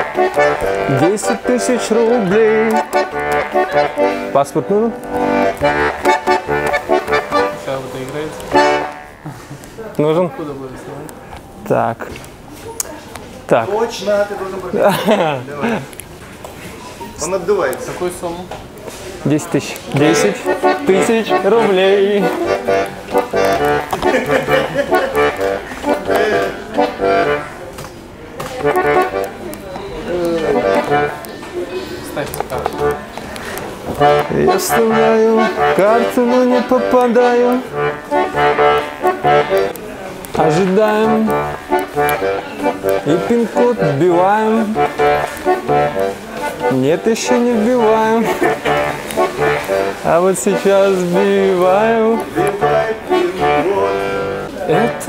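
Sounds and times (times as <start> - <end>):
button accordion playing: 0.0 - 9.6, 19.8 - 27.7, 28.4 - 55.0
person speaking: 0.0 - 12.2, 16.7 - 27.7, 28.5 - 55.0.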